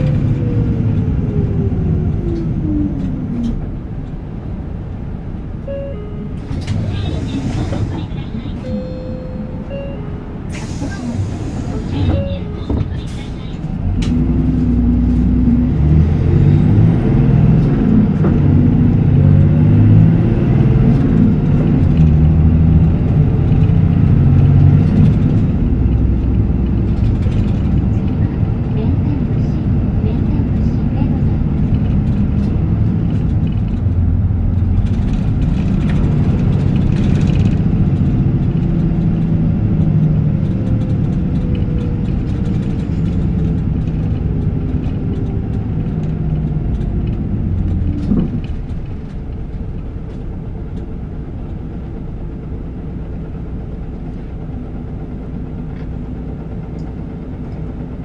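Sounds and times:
bus diesel engine running: 0:00.0 - 0:58.0.

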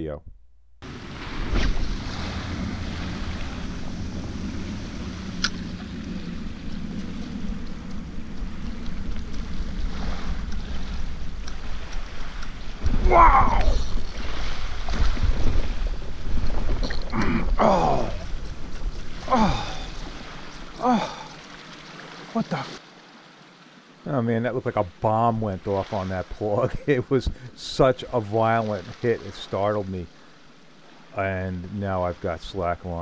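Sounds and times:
wind rumbling on microphone: 0:00.8 - 0:21.2
shallow water washing: 0:00.8 - 0:33.0.

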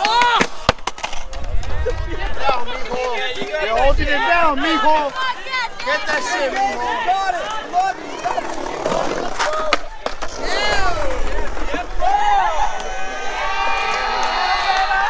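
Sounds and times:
onlookers shouting: 0:00.0 - 0:00.7, 0:01.7 - 0:15.0
skateboard wheels rolling on concrete: 0:00.0 - 0:15.0
skateboard grinding on coping: 0:06.0 - 0:12.0.

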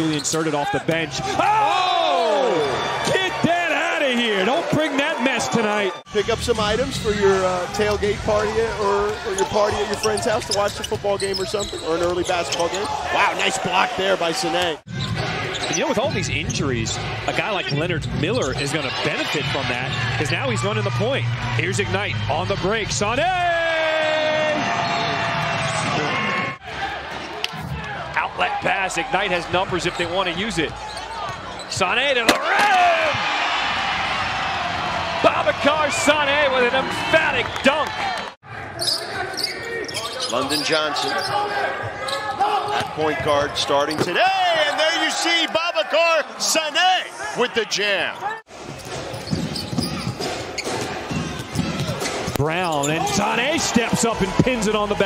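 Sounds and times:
arena crowd noise: 0:00.0 - 0:55.0.

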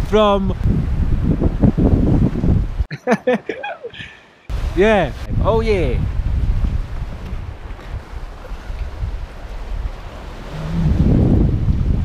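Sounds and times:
wind buffeting microphone: 0:00.0 - 0:02.9, 0:03.9 - 0:12.0.

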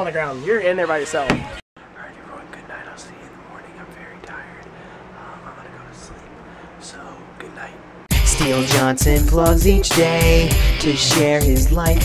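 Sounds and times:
man whispering: 0:01.8 - 0:07.8.

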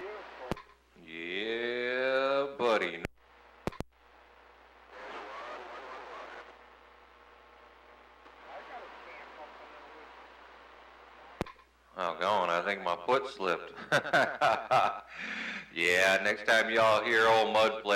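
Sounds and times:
faint garbled radio voices: 0:00.0 - 0:13.8
low radio static: 0:00.0 - 0:17.9
radio clicks: 0:03.6 - 0:04.0, 0:08.2 - 0:11.7.

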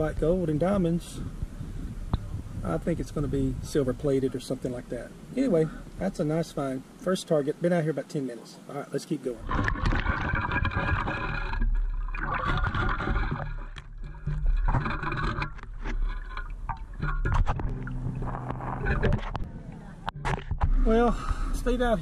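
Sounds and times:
water sloshing: 0:09.3 - 0:21.4.

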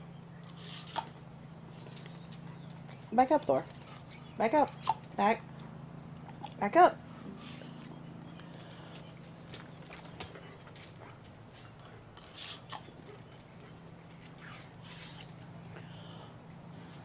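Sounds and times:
steady low hum: 0:00.0 - 0:17.0
dog claws clicking on floor: 0:08.9 - 0:12.0.

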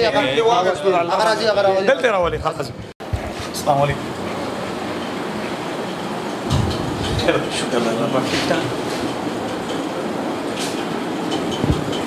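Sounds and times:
steady rushing noise: 0:02.6 - 0:12.0.

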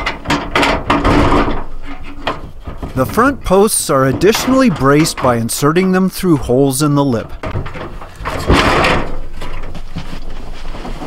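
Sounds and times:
metal stove scraping: 0:01.4 - 0:04.8.

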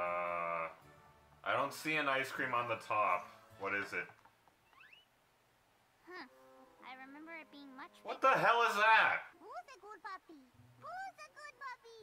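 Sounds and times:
faint rising squeak: 0:04.6 - 0:05.1.

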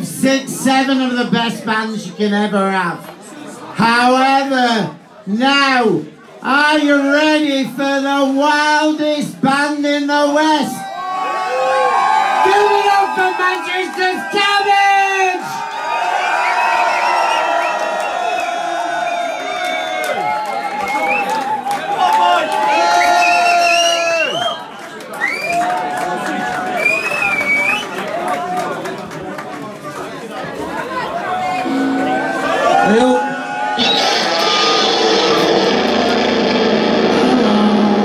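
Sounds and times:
audience cheering and shouting: 0:10.8 - 0:24.4, 0:31.3 - 0:38.0.

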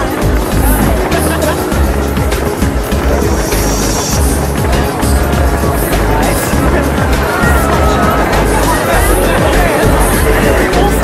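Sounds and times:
fireworks bangs and crackles: 0:00.0 - 0:11.0
low fireworks booms: 0:00.0 - 0:11.0
music playing: 0:00.0 - 0:11.0.

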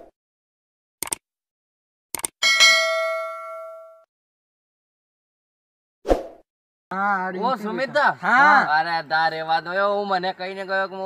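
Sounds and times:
notification bell ding: 0:02.4 - 0:04.1.

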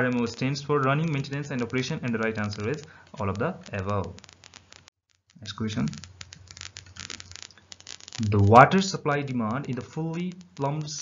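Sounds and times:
rapid irregular clicking: 0:00.0 - 0:11.0.

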